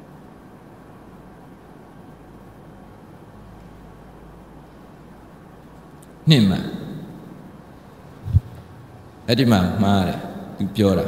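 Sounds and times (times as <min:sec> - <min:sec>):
short low thump: 0:08.2 - 0:08.7.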